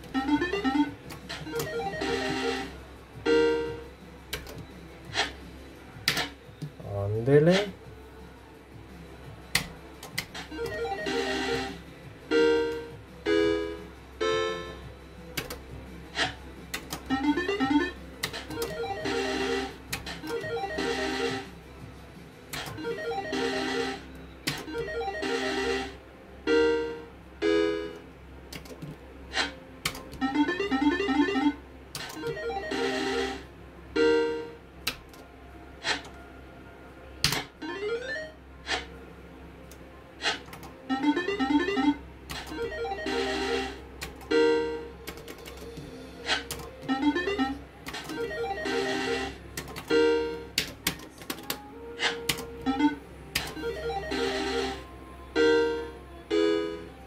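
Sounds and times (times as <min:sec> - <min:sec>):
slot machine jingles: 0:30.2 - 0:31.6.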